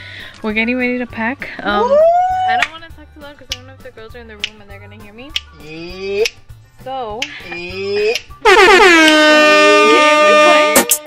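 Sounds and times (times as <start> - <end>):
loud air horn blast: 8.4 - 11.0.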